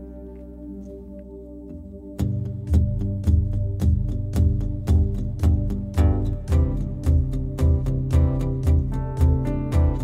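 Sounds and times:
cajon beat: 0:02.7 - 0:10.0.

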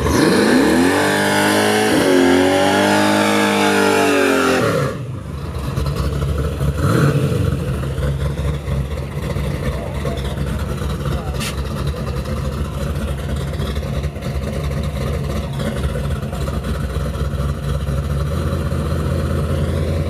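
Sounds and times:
car engine idling: 0:04.8 - 0:20.0.

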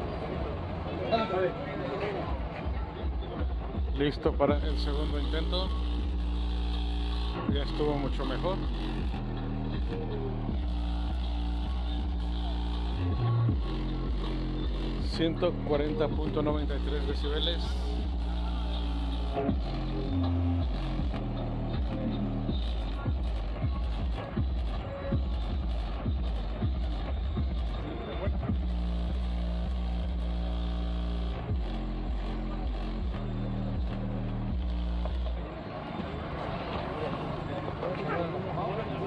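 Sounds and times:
bass-heavy music from car speakers: 0:02.4 - 0:36.4.

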